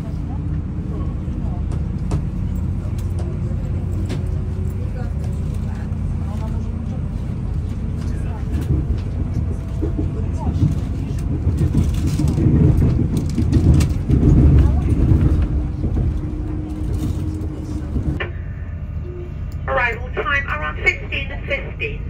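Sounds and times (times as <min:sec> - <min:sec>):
train engine deep rumble: 0:00.0 - 0:22.0.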